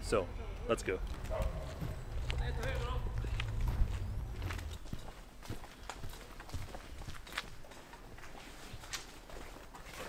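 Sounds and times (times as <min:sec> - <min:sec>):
low rumble: 0:01.0 - 0:05.0
footsteps on pavement: 0:01.0 - 0:10.0.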